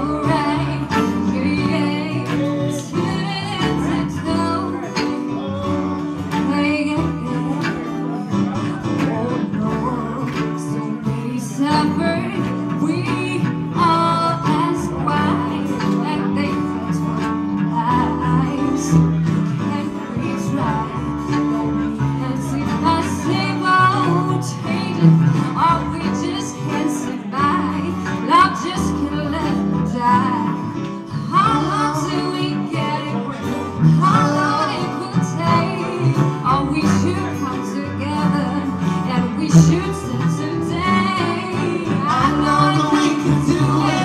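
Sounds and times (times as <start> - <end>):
acoustic guitar: 0.0 - 44.0
bowed cello: 0.0 - 44.0
woman singing: 0.0 - 44.0.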